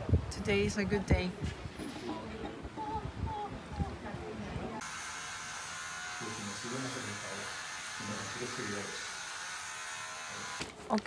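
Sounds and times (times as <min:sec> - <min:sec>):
quiet voices: 0:01.8 - 0:04.8
hair clippers buzzing: 0:04.8 - 0:10.8.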